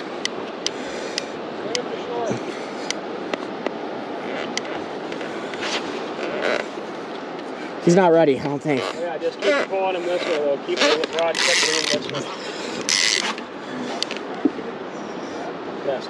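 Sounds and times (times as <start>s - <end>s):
river water rushing: 0.0s - 16.0s
wind: 0.0s - 16.0s.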